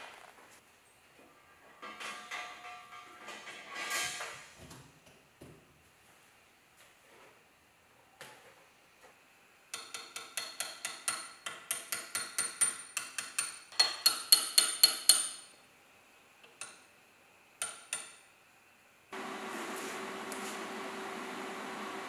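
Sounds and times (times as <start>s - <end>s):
steady hum with hiss: 0.0s - 22.0s.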